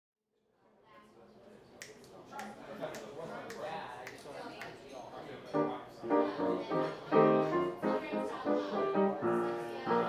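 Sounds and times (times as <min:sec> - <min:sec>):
faint murmur of voices: 0:00.4 - 0:10.0
finger snap: 0:01.8 - 0:04.8.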